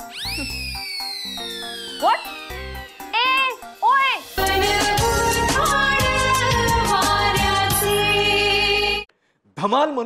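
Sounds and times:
background music tones: 0:00.0 - 0:09.1.

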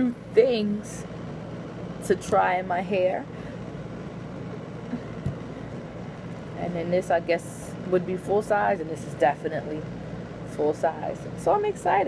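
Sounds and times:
low room hum and hiss: 0:00.0 - 0:12.0.

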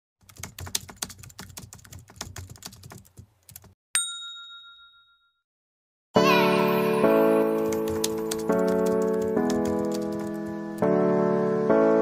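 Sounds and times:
bell ding: 0:04.0 - 0:05.4.

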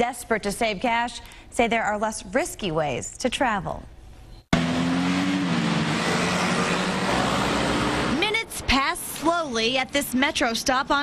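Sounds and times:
car driving past: 0:04.6 - 0:08.2.

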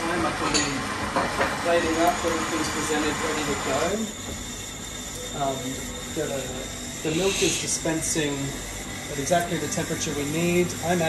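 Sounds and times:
steam arm hissing: 0:05.4 - 0:11.0.

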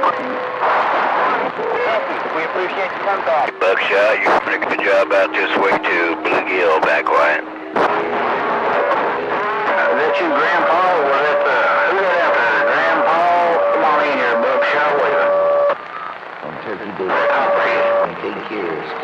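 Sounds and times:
garbled radio voices: 0:00.0 - 0:19.0
radio static: 0:00.0 - 0:19.0.

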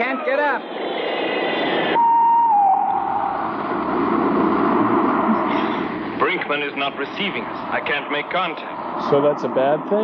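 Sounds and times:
deep rumble: 0:00.5 - 0:06.4
electronic tone sliding down: 0:01.0 - 0:04.0
steady rushing hiss: 0:03.1 - 0:09.6.

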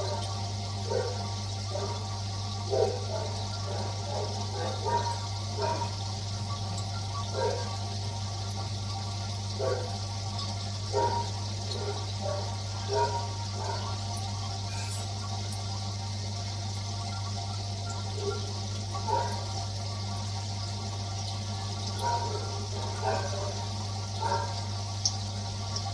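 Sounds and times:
aquarium filter hum: 0:00.0 - 0:25.9
water gurgles: 0:00.0 - 0:25.9
water splashing and bubbling: 0:00.0 - 0:25.9.

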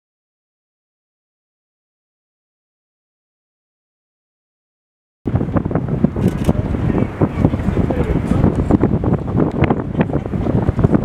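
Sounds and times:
wind buffeting microphone: 0:05.3 - 0:11.0.

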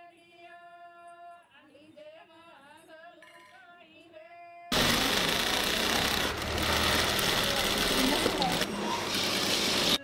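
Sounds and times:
sewing machine running: 0:04.7 - 0:10.0.

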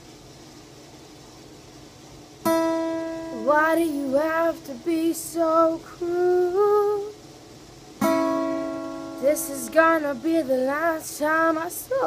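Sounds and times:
guitar chord strummed: 0:02.4 - 0:05.6, 0:08.0 - 0:11.6.

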